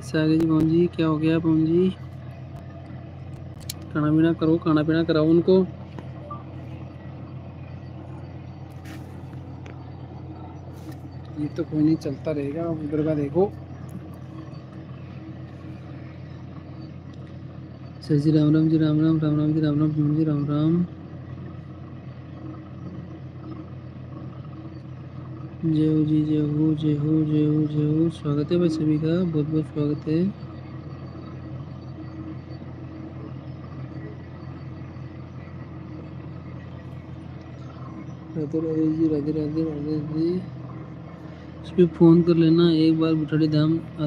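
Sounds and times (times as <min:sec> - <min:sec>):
faint steady tone: 0:00.0 - 0:44.0
low machine hum: 0:00.0 - 0:44.0.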